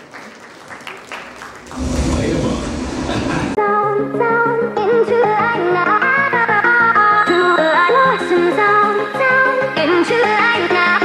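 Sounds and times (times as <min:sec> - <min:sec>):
audience applause: 0:00.0 - 0:03.4
music: 0:03.6 - 0:11.0.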